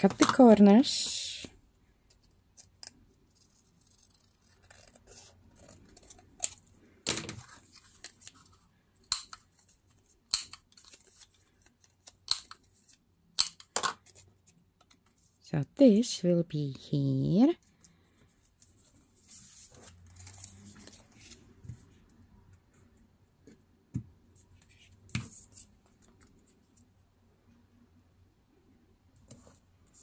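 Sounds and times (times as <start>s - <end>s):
quiet paper handling: 9.4s - 13.1s, 17.6s - 27.0s.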